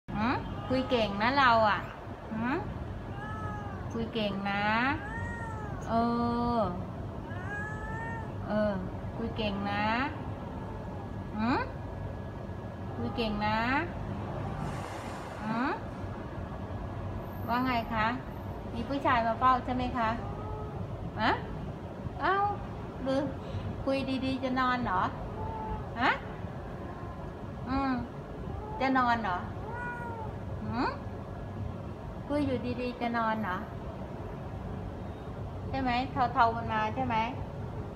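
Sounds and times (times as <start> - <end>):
woman talking: 0.1 - 2.8, 3.9 - 5.1, 5.8 - 6.9, 8.4 - 10.2, 11.3 - 11.8, 13.0 - 14.0, 17.5 - 20.3, 21.2 - 21.5, 22.2 - 25.2, 25.9 - 26.3, 27.6 - 28.2, 28.8 - 29.6, 30.6 - 31.1, 32.3 - 33.7, 35.7 - 37.4
cat meowing: 3.0 - 4.0, 4.8 - 6.0, 7.2 - 8.5, 10.2 - 11.2, 20.0 - 21.0, 25.2 - 26.0, 28.4 - 30.5.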